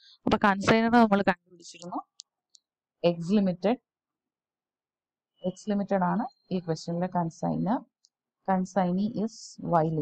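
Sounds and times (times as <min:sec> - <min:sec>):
person speaking: 0:00.3 - 0:02.2.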